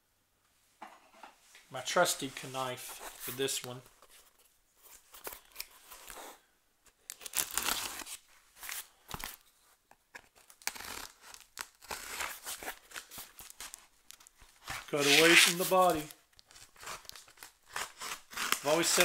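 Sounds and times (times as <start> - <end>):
crinkling: 2.4 - 19.0
cardboard and tape tearing: 7.1 - 9.4, 10.2 - 19.0
knife slicing cardboard package: 10.4 - 13.8, 14.6 - 19.0.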